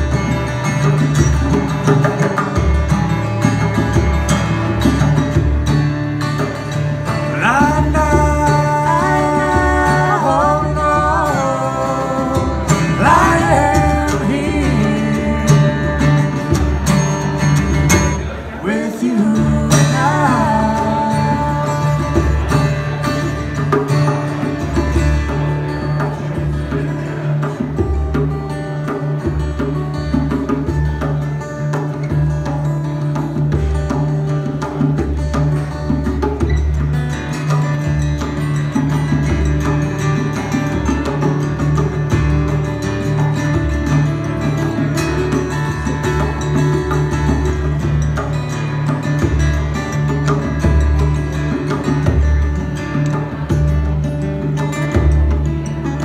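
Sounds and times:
acoustic guitars strumming: 0:00.0 - 0:56.0
hand drum beat: 0:00.0 - 0:56.0
woman singing: 0:07.4 - 0:16.6, 0:18.6 - 0:22.4.

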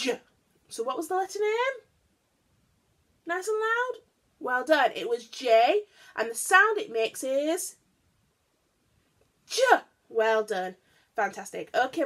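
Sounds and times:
woman speaking: 0:00.0 - 0:01.9, 0:03.2 - 0:07.8, 0:09.5 - 0:12.0.

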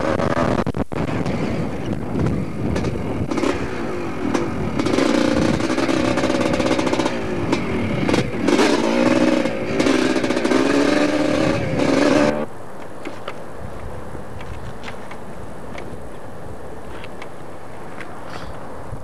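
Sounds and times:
dirt bike engine revving: 0:00.0 - 0:12.5.

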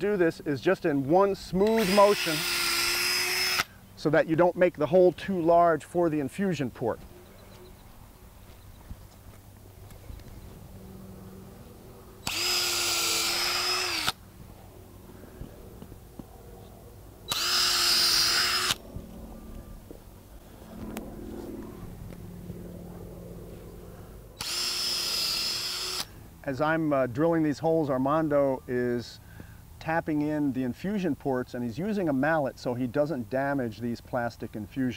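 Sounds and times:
cordless drill boring into wood: 0:01.6 - 0:03.7, 0:12.2 - 0:14.2, 0:17.3 - 0:18.8, 0:24.4 - 0:26.1.

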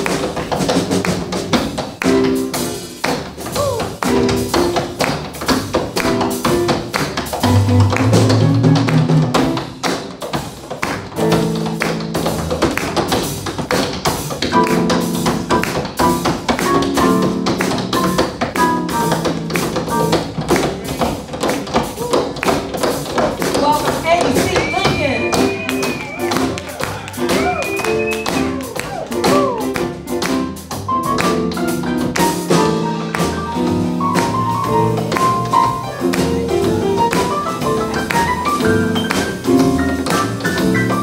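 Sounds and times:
piano chords: 0:00.0 - 0:41.0
upright bass notes: 0:03.5 - 0:09.8, 0:24.2 - 0:41.0.

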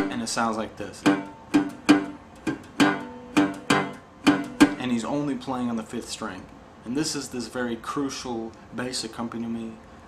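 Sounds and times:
muted guitar bass plucks: 0:00.0 - 0:00.3, 0:01.0 - 0:05.0.

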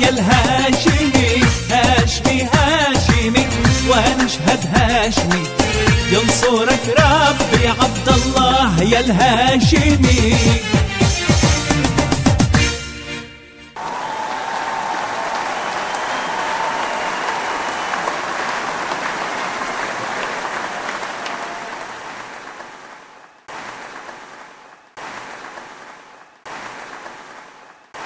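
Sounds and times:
music: 0:00.0 - 0:13.8
audience applauding: 0:13.8 - 0:28.0.

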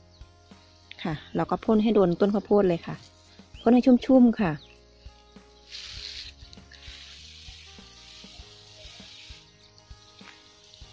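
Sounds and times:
faint background music: 0:00.0 - 0:10.9
pressure sprayer hissing: 0:05.6 - 0:10.9.

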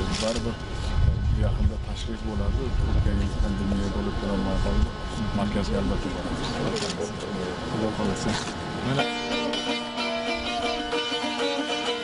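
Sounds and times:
crowd talking: 0:02.2 - 0:12.0.

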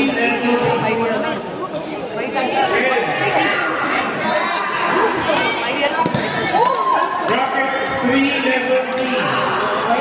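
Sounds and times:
chatter of many voices echoing: 0:00.0 - 0:10.0.

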